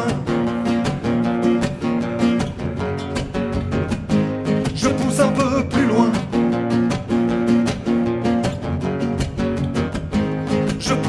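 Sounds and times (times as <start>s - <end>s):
acoustic guitars strumming chords: 0.0s - 11.0s.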